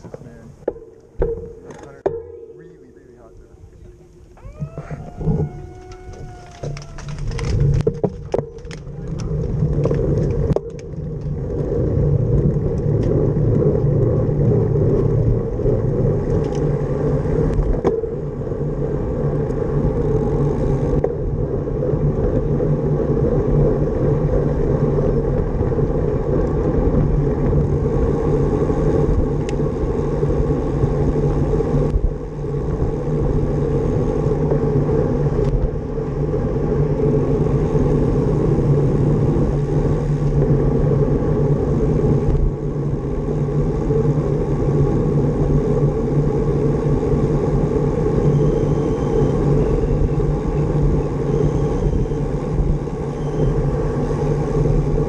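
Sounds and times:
road rumble: 0.0s - 55.0s
wind: 0.0s - 55.0s.

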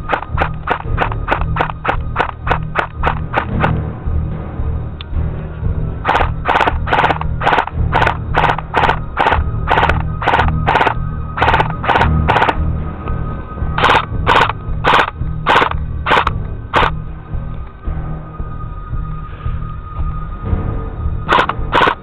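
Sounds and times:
background music: 0.0s - 22.0s
airsoft rifle firing single shots: 6.1s - 12.6s, 13.8s - 16.9s, 21.3s - 22.0s.

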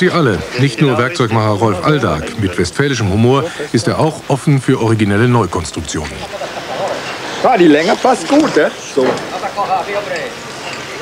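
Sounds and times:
man talking: 0.0s - 6.3s, 7.4s - 10.4s
outdoor background noise: 0.0s - 11.0s.

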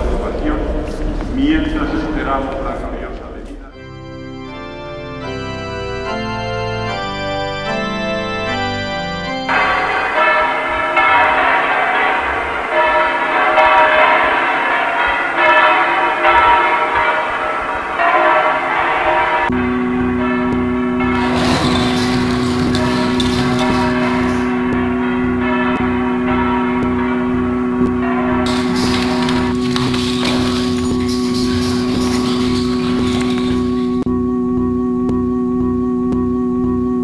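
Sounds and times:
low two-note drone: 3.8s - 11.3s, 19.1s - 37.0s
bells pealing: 3.8s - 34.1s
pulsing low rumble: 19.5s - 37.0s.

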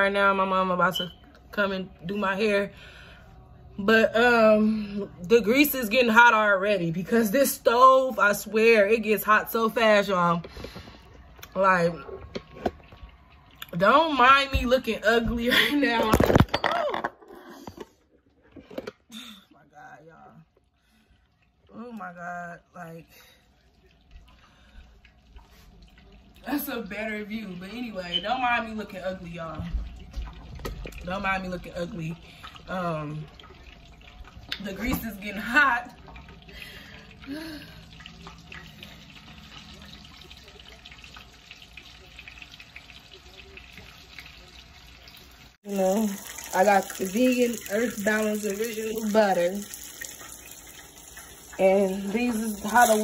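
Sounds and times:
chicken frying in hot oil: 23.2s - 53.0s.

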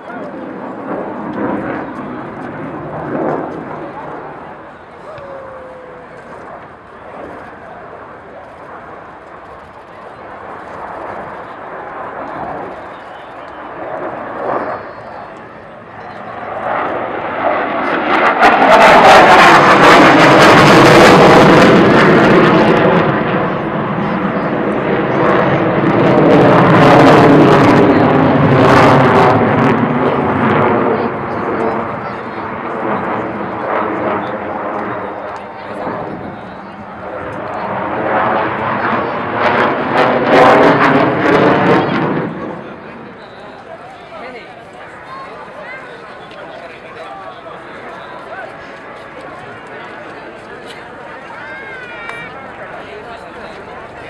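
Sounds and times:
fighter jet engines roaring: 0.0s - 54.0s.

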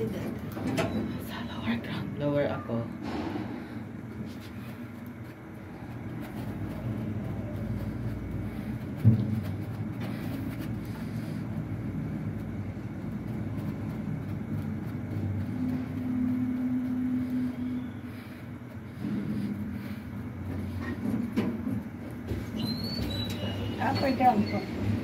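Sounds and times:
elevator rumble and hum: 0.0s - 25.0s
steady low hum tone: 0.0s - 25.0s.

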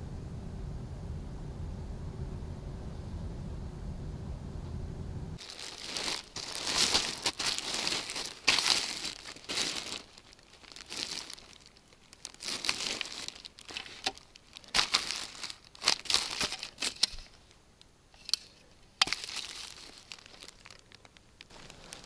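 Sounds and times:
low steady rumble: 0.0s - 18.1s
plastic wrapping crinkling: 5.4s - 17.6s, 18.2s - 22.0s.

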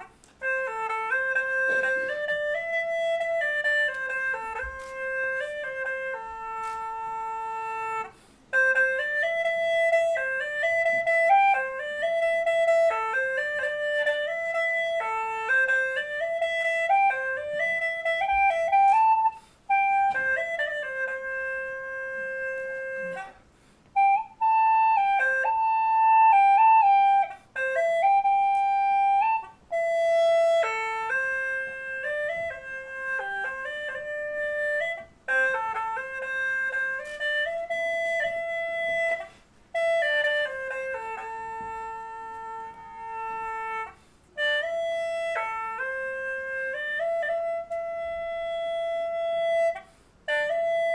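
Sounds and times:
wind instrument slow melody: 0.0s - 50.9s.

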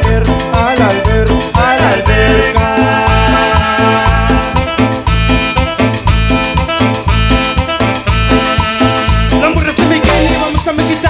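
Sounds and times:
drum kit: 0.0s - 11.0s
guitar: 0.0s - 11.0s
keyboard chords: 0.0s - 11.0s
pulsing electric bass line: 0.0s - 11.0s.

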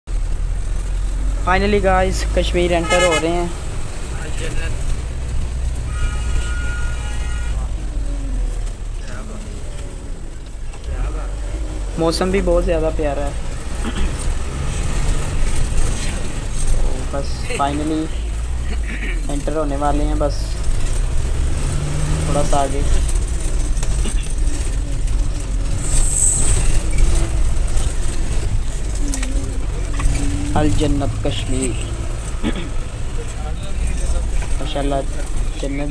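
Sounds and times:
engine and road rumble: 0.0s - 35.9s
vehicle horn: 2.7s - 3.5s, 5.8s - 7.8s
faint voices: 22.8s - 35.9s.

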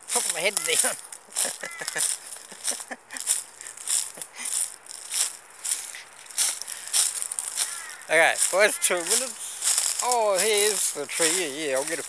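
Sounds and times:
footsteps crunching dry leaves: 0.0s - 12.0s
rustling through scrub: 0.0s - 12.0s.

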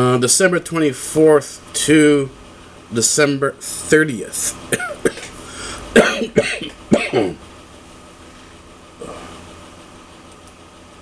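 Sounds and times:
man coughing: 4.7s - 7.4s.

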